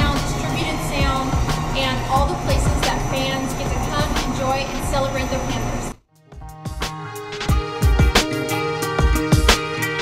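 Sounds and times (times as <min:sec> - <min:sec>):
woman talking: 0:00.0 - 0:06.0.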